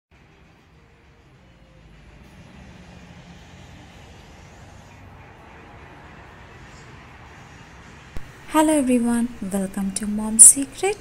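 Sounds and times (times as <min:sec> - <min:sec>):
cars driving past on wet road: 0:00.2 - 0:08.5.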